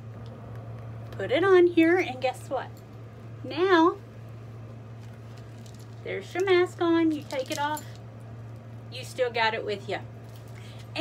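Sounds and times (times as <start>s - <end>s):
steady low hum: 0.0s - 11.0s
face mask rustling and ticking: 4.8s - 6.5s.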